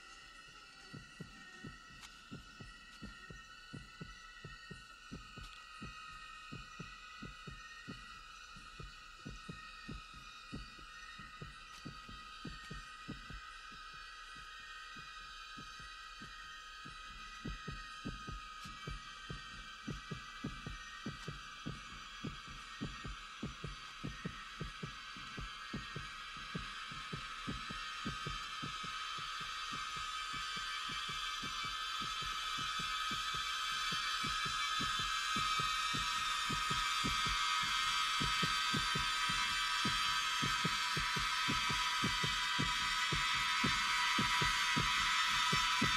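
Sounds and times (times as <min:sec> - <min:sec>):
heartbeat-like thumps: 0:00.0 - 0:45.9
shrill drone of jungle insects: 0:00.0 - 0:45.9.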